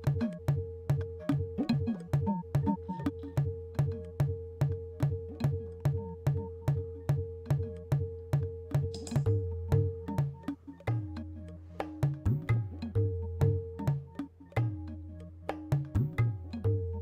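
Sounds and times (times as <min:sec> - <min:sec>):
sharp percussive hits: 0:08.8 - 0:14.9.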